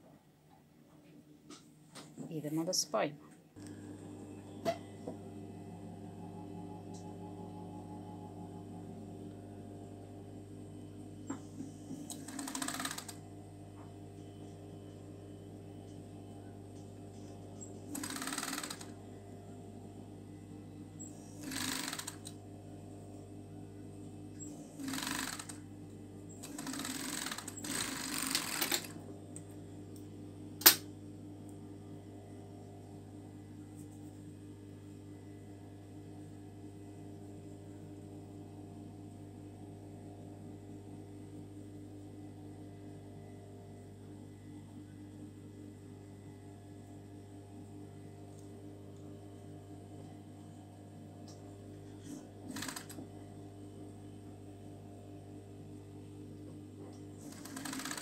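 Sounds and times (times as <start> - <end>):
overlock machine stitching: 11.9 - 13.2, 17.9 - 19.0, 21.1 - 22.3, 24.4 - 25.6, 26.4 - 29.0, 52.5 - 53.0, 57.2 - 58.0
sharp click: 30.6 - 30.9.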